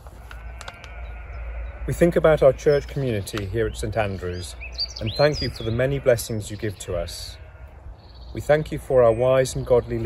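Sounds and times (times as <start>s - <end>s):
low outdoor rumble: 0.0s - 10.0s
faint animal call: 0.2s - 3.2s.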